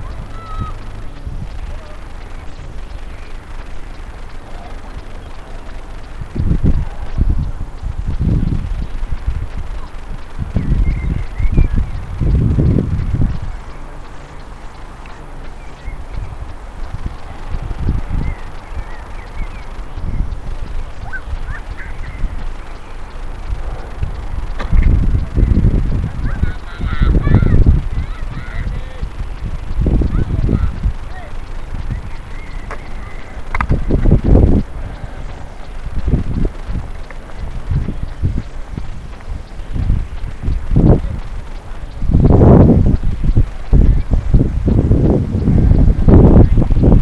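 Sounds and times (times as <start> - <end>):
faint bird chirps: 0.0 - 42.3
wind buffeting microphone: 0.0 - 47.0.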